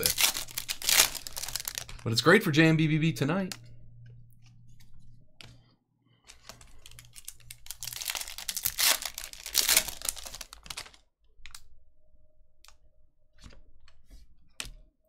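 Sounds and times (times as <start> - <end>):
foil wrapper tearing and crinkling: 0.0 - 2.0, 6.5 - 11.0.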